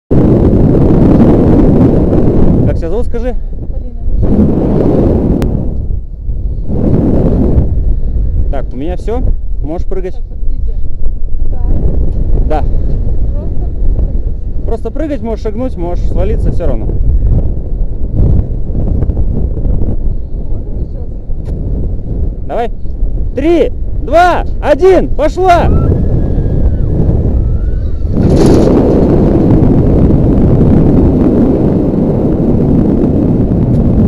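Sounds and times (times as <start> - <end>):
wind buffeting microphone: 0.1 - 34.0.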